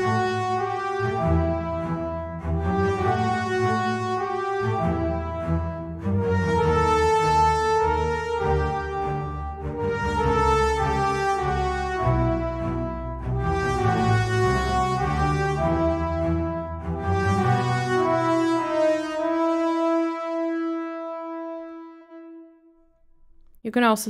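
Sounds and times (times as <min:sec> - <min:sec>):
low strings bass line: 0:00.0 - 0:18.8
french horns playing melody: 0:00.0 - 0:23.2.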